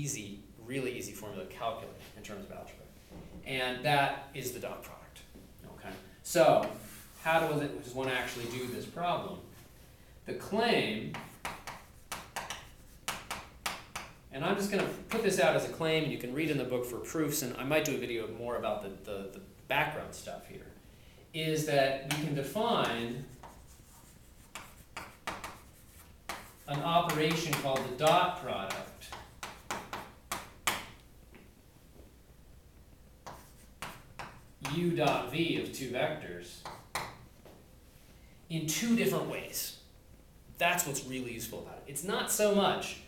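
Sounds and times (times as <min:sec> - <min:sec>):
chalk writing on blackboard: 0:06.6 - 0:07.5, 0:08.2 - 0:09.0, 0:11.1 - 0:14.2, 0:22.1 - 0:31.0, 0:33.2 - 0:35.3, 0:36.6 - 0:37.2.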